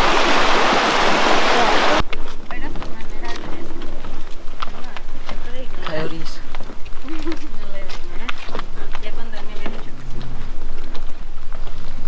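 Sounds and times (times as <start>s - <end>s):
footsteps on wooden planks: 2.0s - 12.0s.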